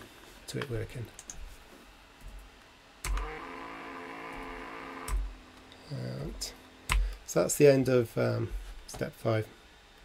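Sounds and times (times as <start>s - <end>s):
motor knock: 3.0s - 5.4s
electric motor hum: 3.0s - 7.2s.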